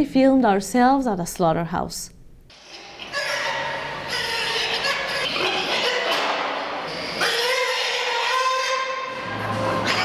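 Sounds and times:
pigs squealing: 2.5s - 10.0s.

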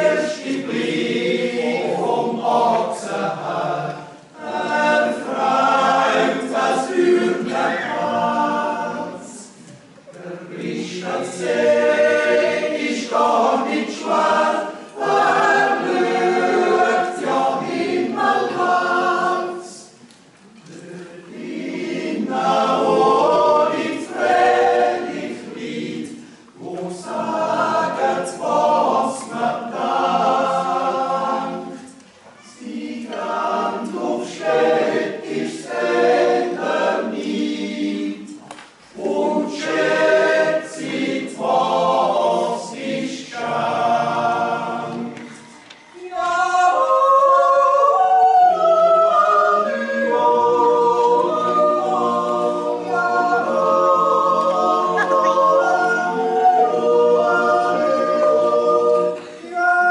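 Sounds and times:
choir yodeling in close harmony: 0.0s - 20.0s, 20.7s - 59.9s.

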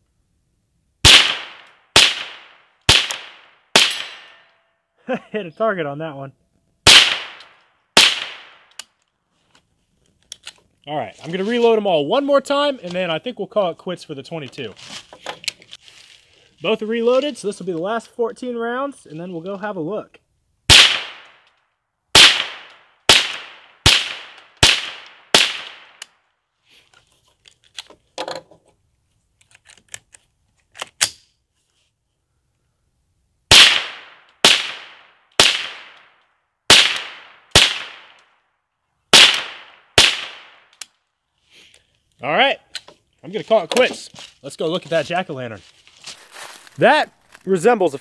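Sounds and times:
rifle shots: 1.0s - 4.4s, 6.8s - 8.7s, 20.7s - 21.4s, 22.2s - 26.0s, 33.5s - 36.1s, 36.7s - 38.2s, 39.1s - 40.7s.

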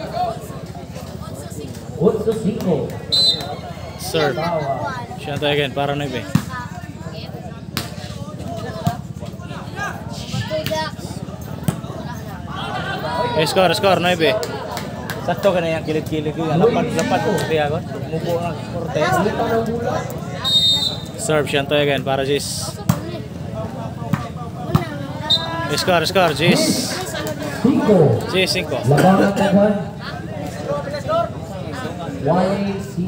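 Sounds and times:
spectators talking and shouting: 0.0s - 33.0s.

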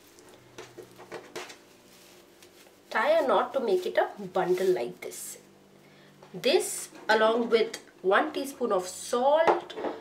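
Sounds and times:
cloth bundle rustling: 0.8s - 5.1s.

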